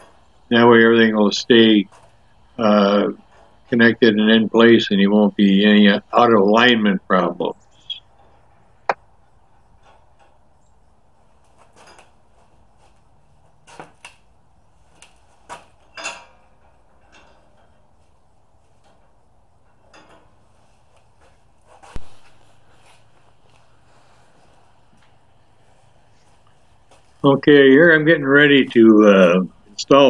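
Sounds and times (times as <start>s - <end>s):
metal clinks and knocks: 11.4s - 13.0s, 15.4s - 18.1s, 18.7s - 21.4s.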